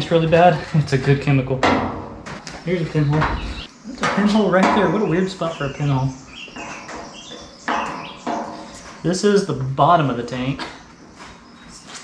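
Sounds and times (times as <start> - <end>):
bird chirps: 2.4 - 12.0.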